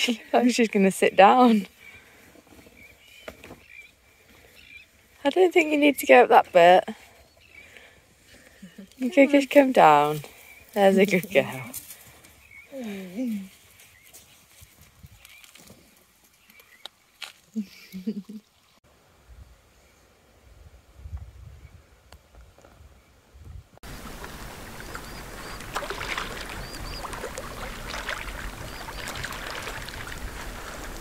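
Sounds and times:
shallow sea water washing: 0:23.8 - 0:31.0.

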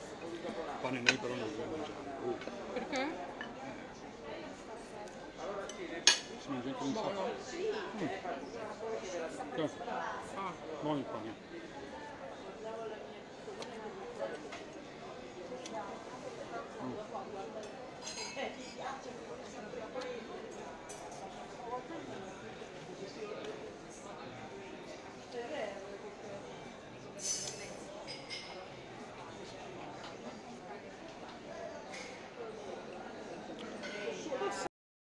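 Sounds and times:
murmur of voices: 0:00.0 - 0:34.7
conversation: 0:00.2 - 0:32.9
cutlery clinking on plates: 0:00.9 - 0:01.4, 0:05.6 - 0:06.3, 0:17.6 - 0:18.8, 0:20.9 - 0:21.4, 0:27.2 - 0:28.7, 0:33.6 - 0:34.3.

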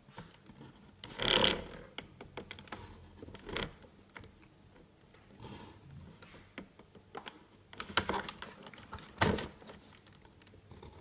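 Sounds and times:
small clicks and taps: 0:06.3 - 0:08.8.

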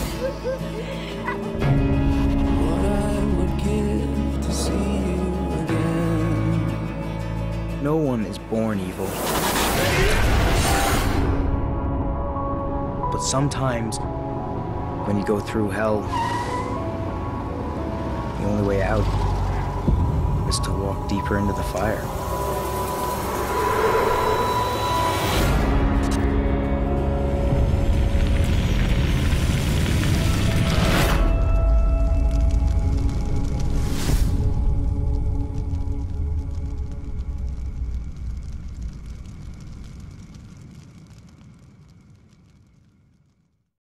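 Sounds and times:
rumbling metallic drone: 0:14.0 - 0:42.7
steady high tone: 0:19.7 - 0:27.3.

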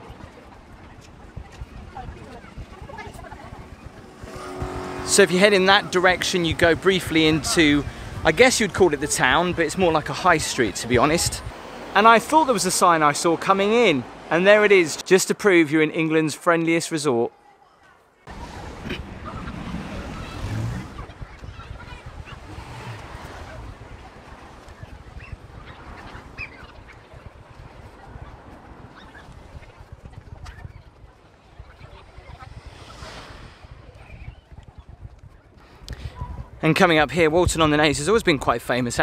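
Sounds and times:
traffic rumble: 0:00.0 - 0:16.8, 0:17.5 - 0:39.0.

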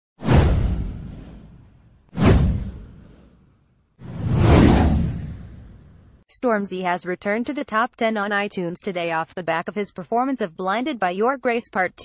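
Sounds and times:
whoosh sound effects: 0:00.2 - 0:06.2.

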